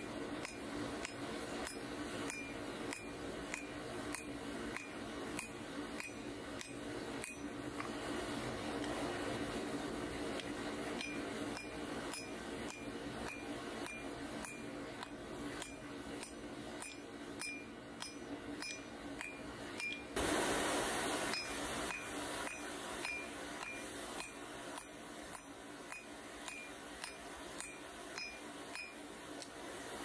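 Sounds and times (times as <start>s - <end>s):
hammer striking steel on anvil: 0.0s - 7.9s, 11.0s - 20.2s, 21.3s - 29.5s
burst of rushing noise: 20.2s - 21.7s.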